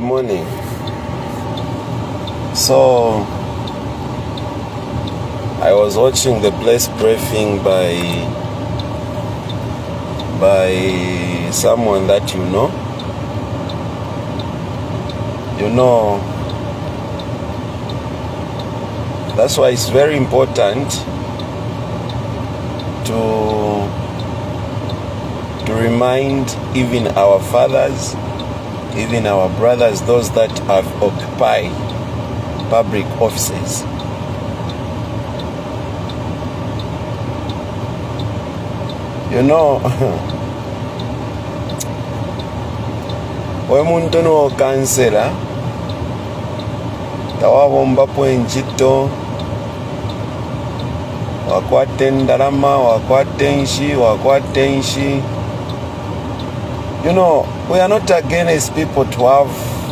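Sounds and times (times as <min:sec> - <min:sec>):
faint regular ticking: 0:00.0 - 0:59.5
car rumble inside cabin: 0:00.0 - 0:59.9.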